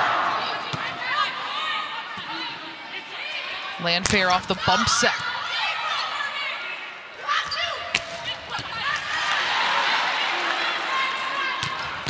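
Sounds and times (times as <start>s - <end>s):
crowd cheering: 0.0s - 12.0s.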